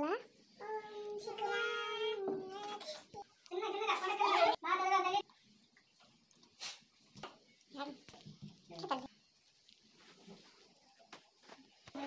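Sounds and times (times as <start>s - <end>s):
girl singing: 0.6s - 3.0s.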